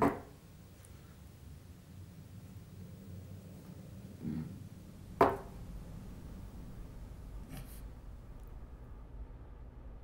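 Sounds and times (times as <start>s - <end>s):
low hum: 0.6s - 10.0s.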